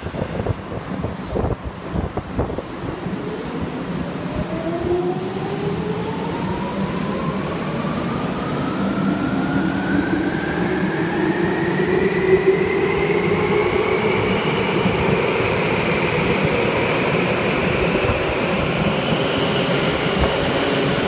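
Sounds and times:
wheels rumbling on rail: 0:13.0 - 0:21.0.

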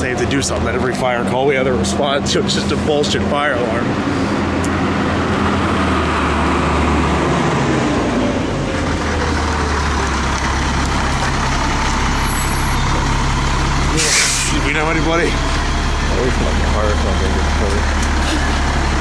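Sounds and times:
truck engine idling: 0:00.0 - 0:19.0.

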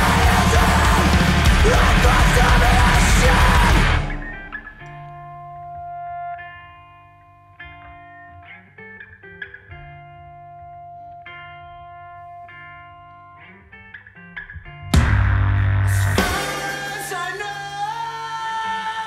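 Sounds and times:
full rock band playing loud: 0:00.0 - 0:04.7, 0:15.0 - 0:19.0
electric guitar chords: 0:00.0 - 0:19.0.

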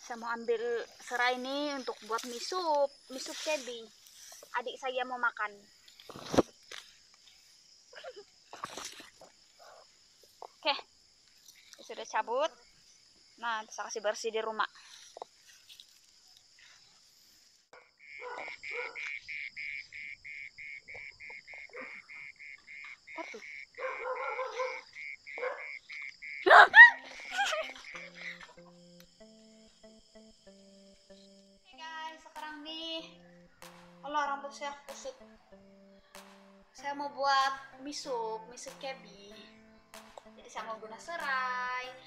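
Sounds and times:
crickets chirring: 0:00.0 - 0:42.0
woman laughing: 0:08.0 - 0:08.3, 0:26.5 - 0:28.6
woman exclaiming: 0:26.5 - 0:27.7.

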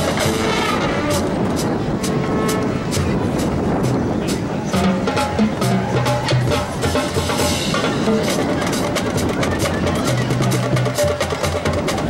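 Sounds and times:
drum line playing: 0:00.0 - 0:12.0.

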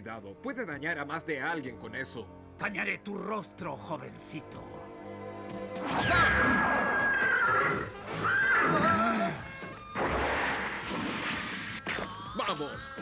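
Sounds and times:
dramatic music: 0:03.1 - 0:13.0
cartoon fight sound effects: 0:05.9 - 0:06.6
horse whinnying: 0:05.9 - 0:09.6.

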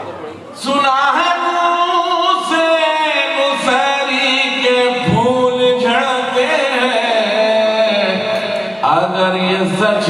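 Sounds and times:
man chanting melodically: 0:00.5 - 0:10.0.

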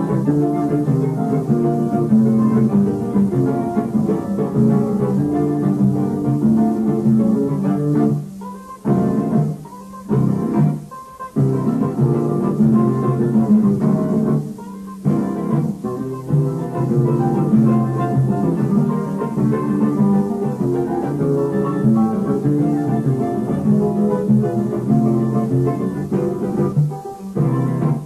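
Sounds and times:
plucked guitars melody: 0:00.0 - 0:28.0.

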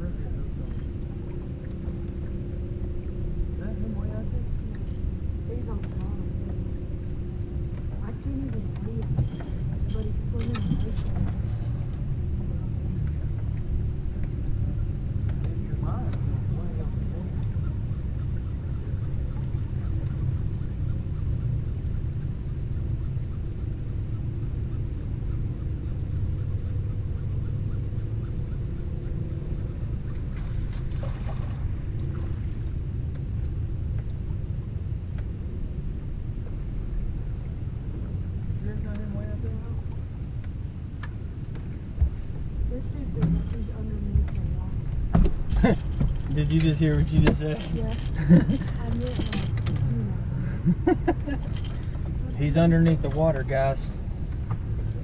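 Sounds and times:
wind rumbling on microphone: 0:00.0 - 0:55.0.

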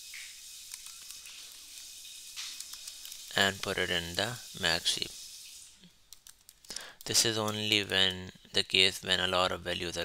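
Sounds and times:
keyboard typing: 0:00.7 - 0:03.3, 0:06.1 - 0:08.0.

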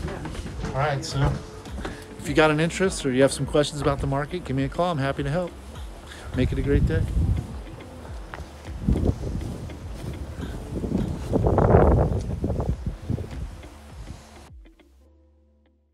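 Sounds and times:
wind buffeting a microphone: 0:05.8 - 0:14.3.

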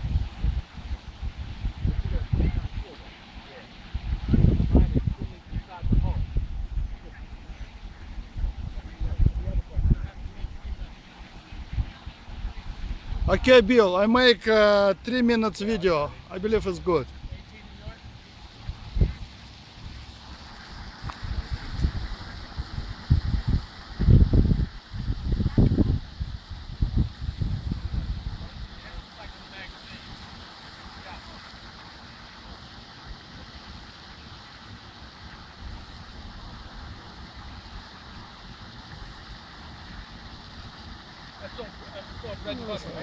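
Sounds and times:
wind buffeting microphone: 0:00.0 - 0:31.4.

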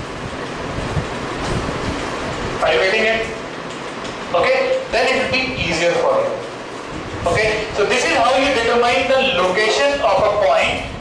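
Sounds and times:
steady low rumbling: 0:00.0 - 0:11.0.

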